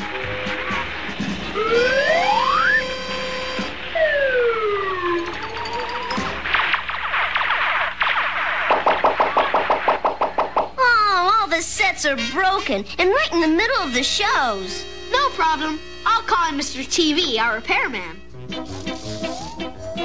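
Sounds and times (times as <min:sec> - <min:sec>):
cartoon music from televisions: 0:00.0 - 0:10.2, 0:18.2 - 0:20.0
sliding whistle: 0:01.6 - 0:04.2, 0:18.8 - 0:20.0
electrical crackling: 0:06.1 - 0:10.8.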